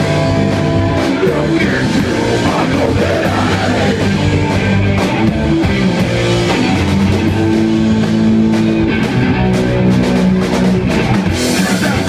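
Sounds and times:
bass guitar: 0.0 - 12.0
drum kit: 0.0 - 12.0
electric guitar chords: 0.0 - 12.0.

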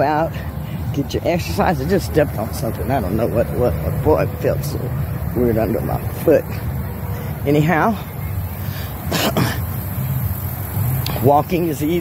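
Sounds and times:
steady low rumble: 0.0 - 12.0
woman coughing: 9.1 - 9.6.

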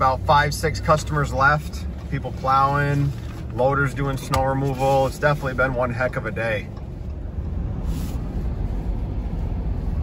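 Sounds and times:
truck engine and tyres rumbling: 0.0 - 10.0.

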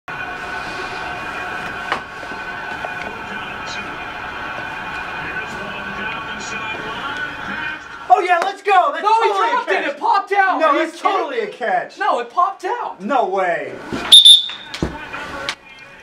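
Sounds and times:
stadium crowd din: 0.1 - 9.7.

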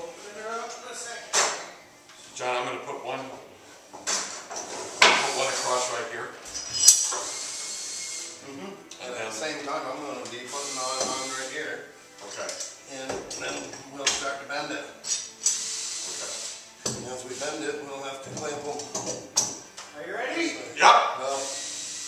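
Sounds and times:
workers talking indistinctly: 5.0 - 6.4, 8.4 - 15.2
clamps and tools clattering: 6.5 - 7.2.

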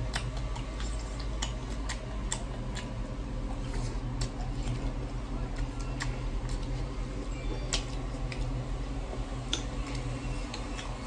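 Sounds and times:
open-mouthed chewing: 0.0 - 11.0
steady low hum: 0.0 - 11.0.

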